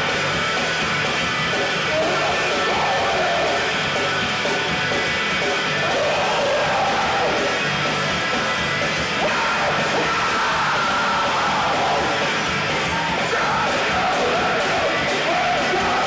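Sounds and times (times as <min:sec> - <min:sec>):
live rock band playing: 0:00.0 - 0:16.0
singer yelling: 0:01.8 - 0:03.8, 0:05.7 - 0:07.6, 0:09.1 - 0:16.0.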